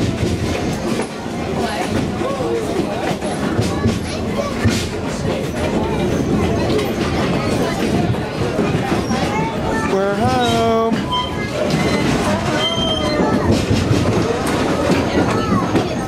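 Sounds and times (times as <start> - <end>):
indistinct passenger chatter: 0.0 - 16.0
train rolling along track: 0.0 - 16.0.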